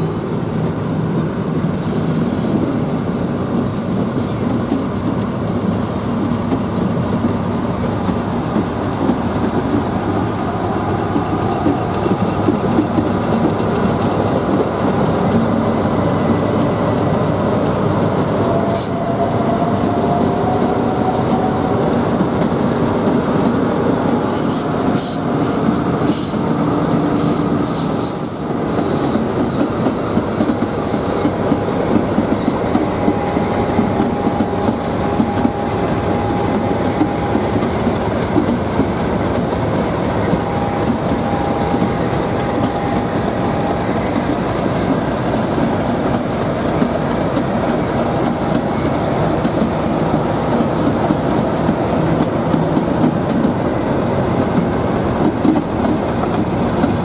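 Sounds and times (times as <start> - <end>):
diesel locomotive engine rumbling: 0.0 - 57.0
wheel squeals: 27.1 - 31.2.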